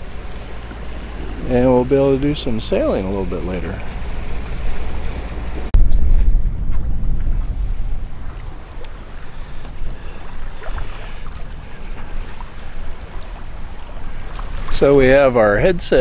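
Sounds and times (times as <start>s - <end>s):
water rushing along a hull: 0.0s - 16.0s
wind rumbling on microphone: 0.0s - 16.0s.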